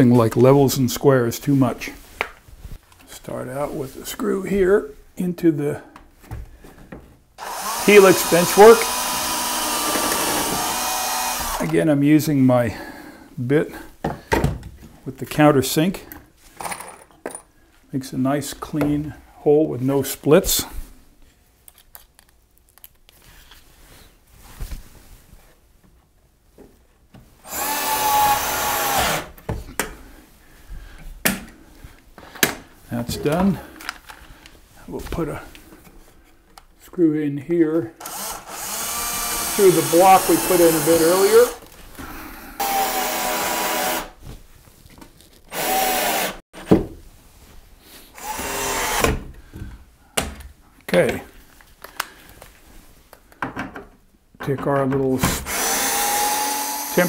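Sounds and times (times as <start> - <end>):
cordless drill driving screw: 7.4 - 11.7, 27.5 - 29.3, 38.0 - 41.6, 42.6 - 44.2, 45.5 - 46.4, 48.2 - 49.2, 55.2 - 57.0.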